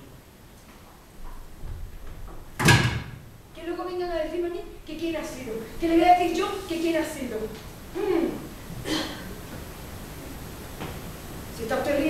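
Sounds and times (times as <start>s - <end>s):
woman's voice: 3.6s - 8.5s, 11.6s - 12.0s.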